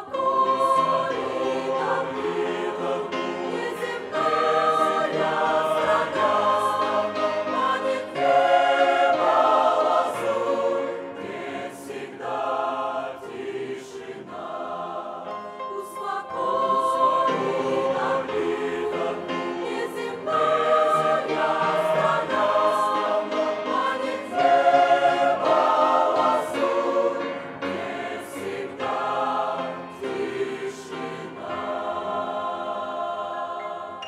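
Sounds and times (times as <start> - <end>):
choir singing a slow hymn: 0.0 - 34.0.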